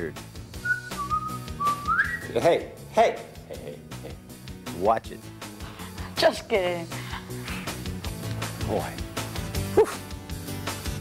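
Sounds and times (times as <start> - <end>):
quiet background music: 0.0 - 11.0
person whistling a tune: 0.6 - 2.3.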